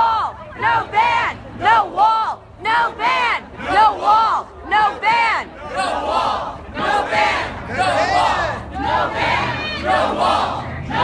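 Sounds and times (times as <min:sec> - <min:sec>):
crowd chanting: 0:00.0 - 0:11.0.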